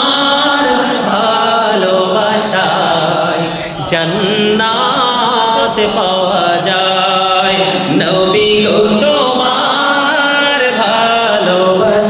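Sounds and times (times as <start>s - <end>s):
man chanting into microphone: 0.0s - 12.0s.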